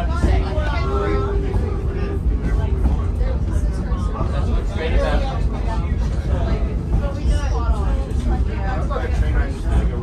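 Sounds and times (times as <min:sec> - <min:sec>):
electric railcar rumble: 0:00.0 - 0:10.0
passenger chatter: 0:00.0 - 0:10.0.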